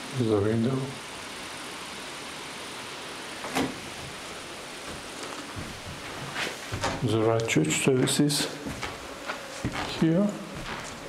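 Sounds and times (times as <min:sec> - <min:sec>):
low background hiss: 0:00.0 - 0:11.0.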